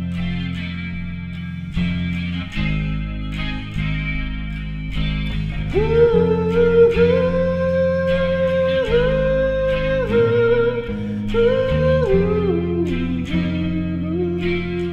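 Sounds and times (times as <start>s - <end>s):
bass guitar notes: 0.0s - 14.9s
electric guitar chords: 0.0s - 14.9s
long-held melody line: 0.0s - 14.9s.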